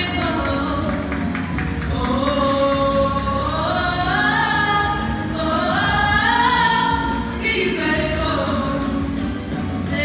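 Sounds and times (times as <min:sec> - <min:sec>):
women singing gospel: 0:01.8 - 0:09.1.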